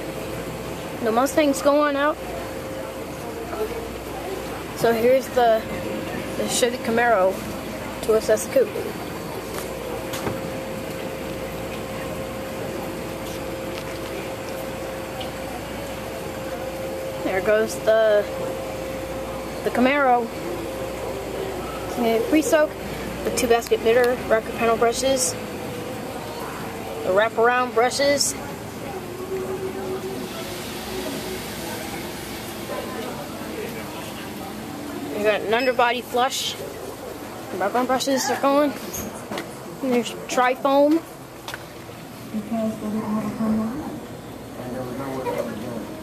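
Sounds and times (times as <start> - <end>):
car wash machinery hum: 0.0 - 46.0
machine hum: 38.8 - 46.0.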